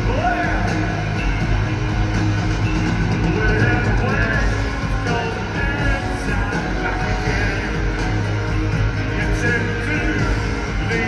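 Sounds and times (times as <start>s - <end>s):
live rock band playing loudly: 0.0s - 11.0s.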